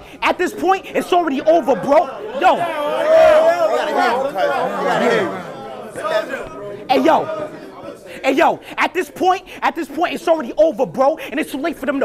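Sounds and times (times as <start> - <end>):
men talking and shouting: 0.0 - 12.0.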